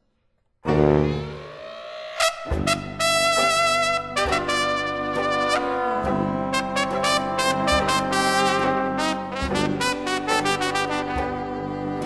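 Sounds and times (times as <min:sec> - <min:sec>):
trumpet and trombone held notes: 0:02.2 - 0:12.0.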